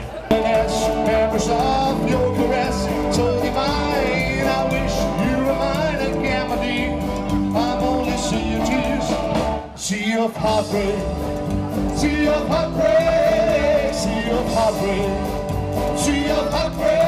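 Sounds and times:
electric guitar: 0.0s - 9.8s, 10.4s - 17.0s
rock and roll band playing: 0.0s - 17.0s.

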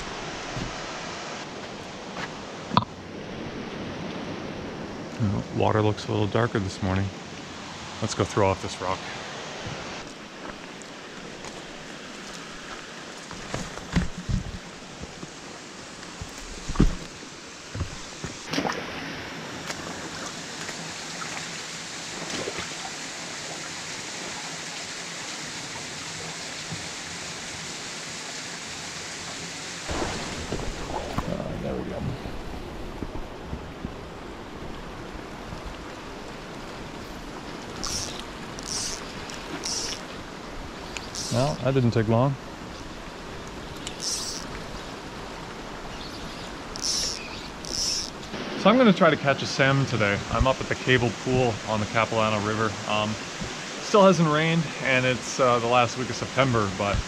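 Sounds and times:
river water rushing: 0.0s - 14.0s, 14.6s - 57.0s
footsteps and gear knocking on rock: 17.7s - 18.4s.

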